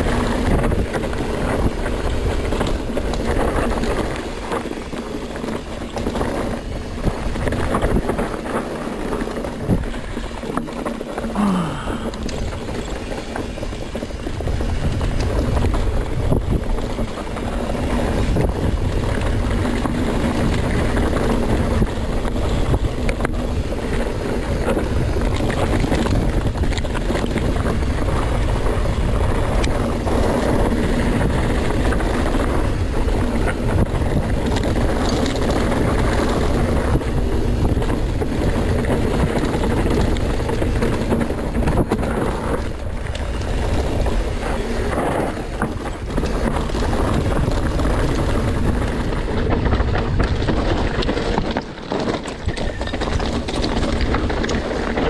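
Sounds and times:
bike clattering over rough ground: 0.0 - 55.0
bike tyre noise: 0.0 - 55.0
wind rumble on microphone: 0.0 - 55.0.

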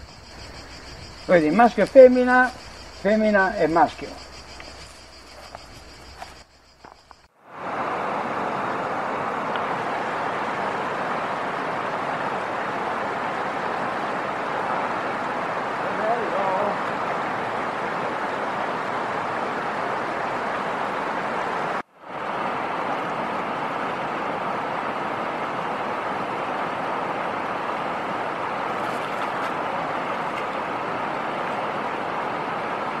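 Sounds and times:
river water rushing over weir: 7.5 - 33.0.

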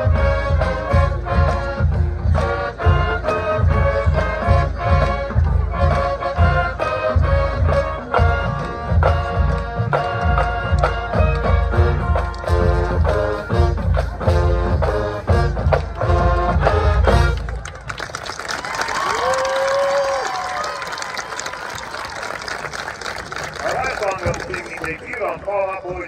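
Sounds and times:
marching band brass and drums: 0.0 - 26.0
crowd applause and cheering: 15.5 - 26.0.

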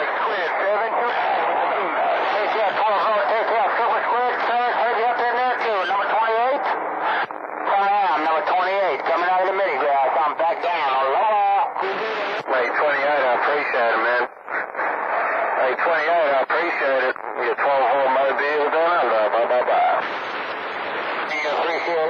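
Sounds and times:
garbled voices over radio speaker: 0.0 - 22.0.

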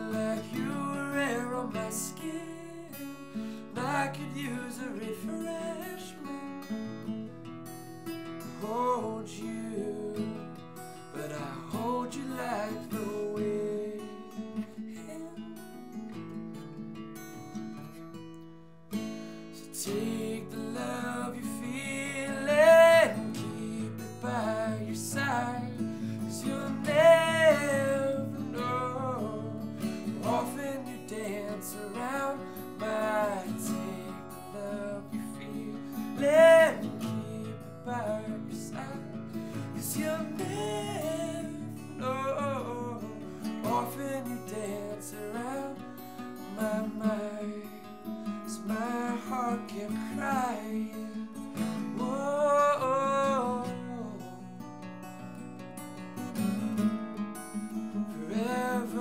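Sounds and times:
man's wordless vocal melody: 0.0 - 7.1, 8.4 - 16.3, 19.3 - 54.6, 57.9 - 59.0
acoustic guitar strumming: 0.0 - 59.0.

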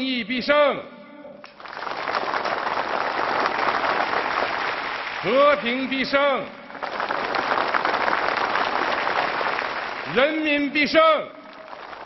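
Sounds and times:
slogans over loudspeakers: 0.0 - 1.5, 5.2 - 6.8, 10.1 - 11.9
crowd applauding: 1.5 - 10.7, 11.4 - 12.0.

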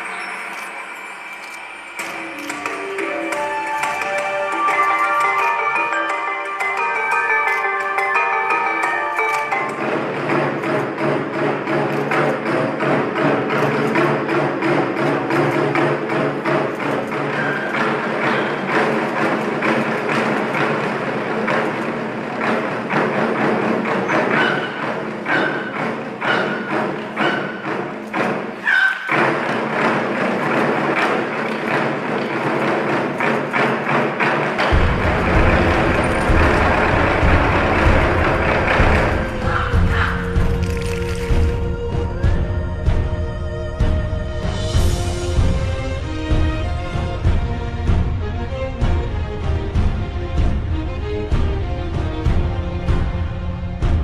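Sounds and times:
pitched backing music: 2.0 - 54.0
barrel drums in fast rhythm: 2.1 - 54.0.

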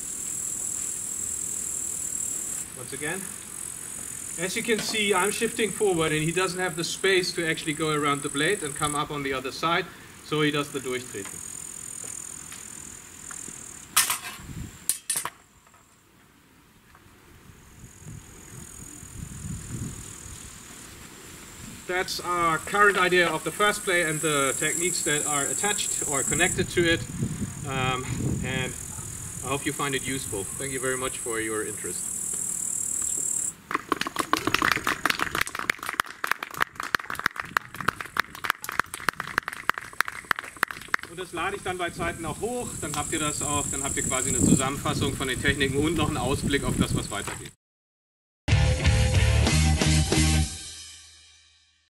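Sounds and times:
insect hiss: 0.0 - 47.5.

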